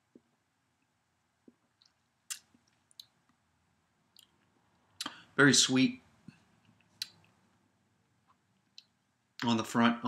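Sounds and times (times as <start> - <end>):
lip smacks: 1.5 - 3.4, 4.1 - 5.2, 6.6 - 7.4
tongue clicks: 1.8 - 3.2.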